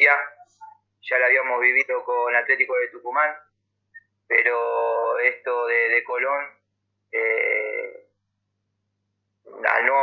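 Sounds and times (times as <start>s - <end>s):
man speaking over video call: 0.0s - 8.2s, 9.4s - 10.0s.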